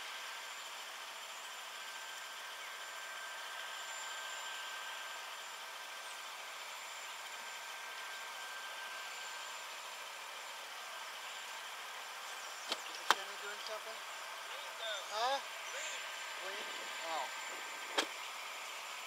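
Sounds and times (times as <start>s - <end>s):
high steady whine: 0.0s - 19.0s.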